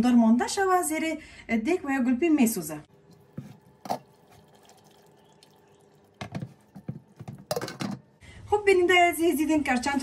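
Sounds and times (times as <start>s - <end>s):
stew bubbling in pot: 3.0s - 7.7s.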